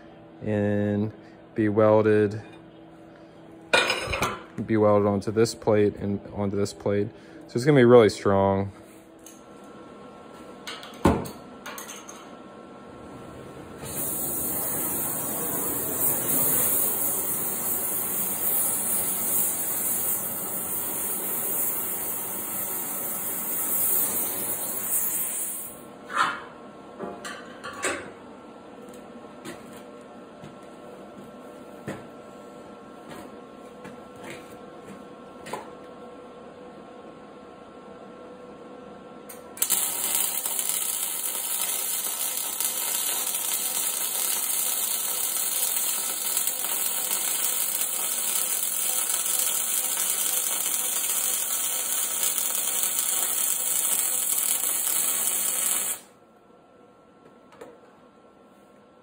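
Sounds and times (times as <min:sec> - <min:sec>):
welder sizzling: 0:13.8 - 0:25.8, 0:39.6 - 0:56.1.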